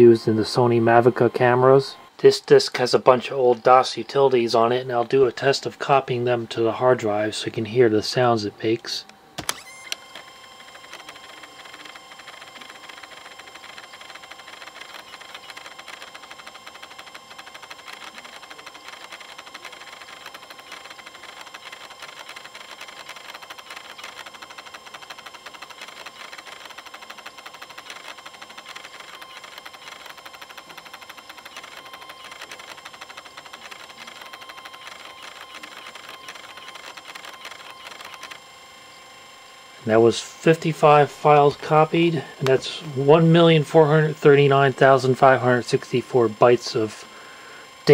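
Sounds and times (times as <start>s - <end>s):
floppy drive whirring: 0.0s - 47.9s
read head ticking: 10.6s - 38.4s.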